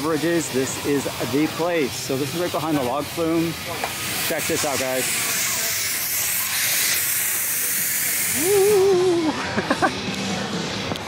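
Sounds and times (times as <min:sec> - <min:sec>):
fog machine hissing: 0:00.0 - 0:09.3
person laughing: 0:08.4 - 0:10.0.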